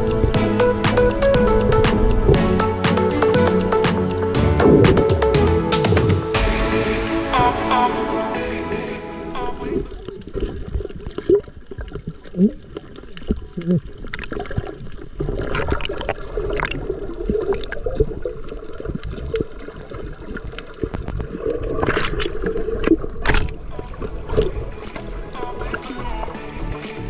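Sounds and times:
underwater water gurgling and bubbling: 9.6s - 25.7s
bubbles and splashing: 9.8s - 24.9s
small underwater clicks: 10.1s - 23.6s.

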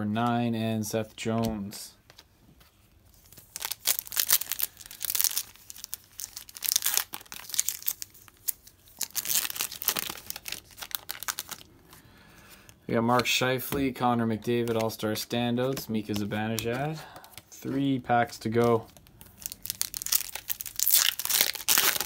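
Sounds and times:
foil wrapper tearing and crinkling: 3.2s - 11.7s, 19.3s - 22.0s.

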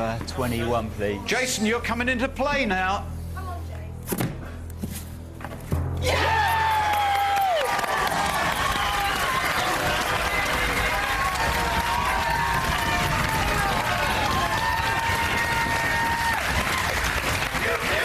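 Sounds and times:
crowd cheering and clapping: 6.0s - 18.0s.

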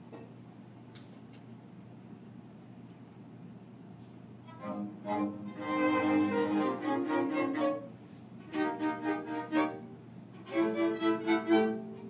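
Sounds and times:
string quartet playing: 4.5s - 12.0s.

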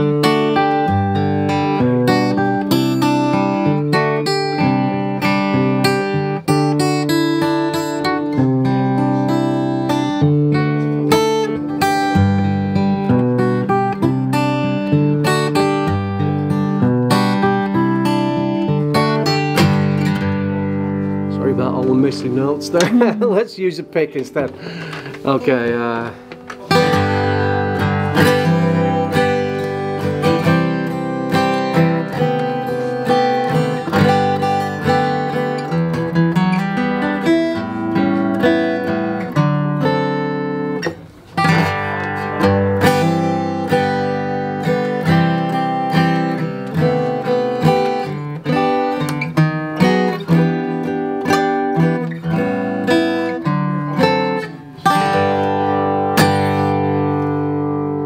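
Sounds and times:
acoustic guitar strumming and picking: 0.0s - 58.0s.

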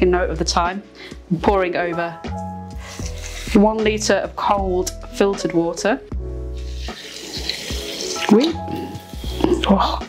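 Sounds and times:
water pouring into a glass jar: 6.6s - 9.6s
water splashing: 6.6s - 9.7s.

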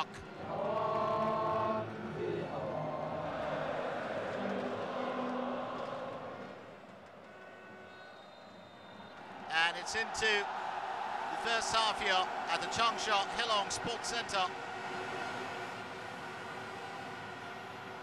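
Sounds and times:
stadium crowd singing anthem: 0.0s - 7.2s.

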